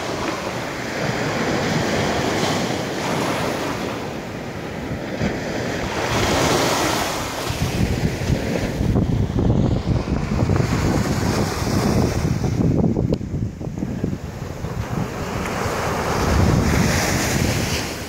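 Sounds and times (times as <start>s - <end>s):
small waves breaking on sand: 0.0s - 12.8s, 13.6s - 18.0s
wind buffeting microphone: 0.0s - 18.0s.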